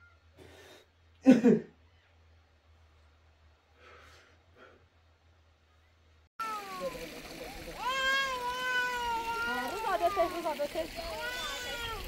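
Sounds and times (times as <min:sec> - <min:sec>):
young child crying: 0:07.8 - 0:10.5, 0:11.1 - 0:12.0.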